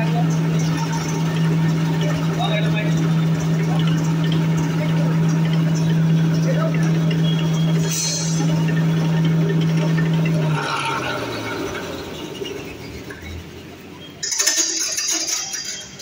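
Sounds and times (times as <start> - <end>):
rustling clatter: 14.2 - 16.0.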